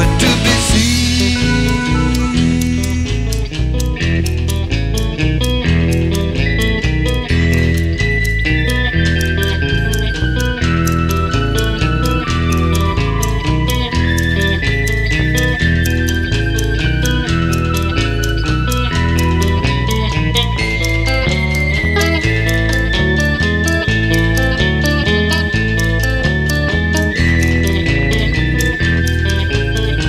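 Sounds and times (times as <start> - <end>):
steady drum beat: 0.0 - 3.8
bass guitar: 0.0 - 30.0
electric guitar: 0.0 - 30.0
sustained keyboard melody: 0.0 - 30.0.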